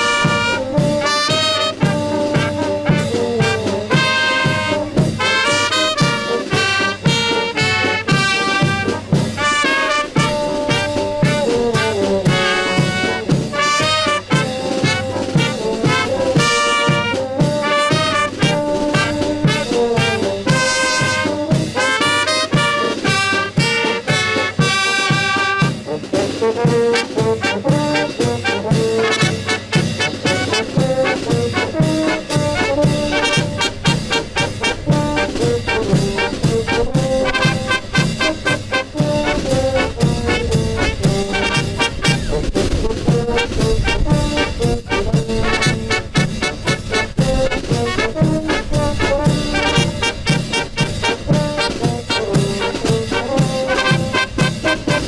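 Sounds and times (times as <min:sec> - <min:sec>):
brass band playing lively tune: 0:00.0 - 0:55.0
cymbals: 0:00.0 - 0:55.0.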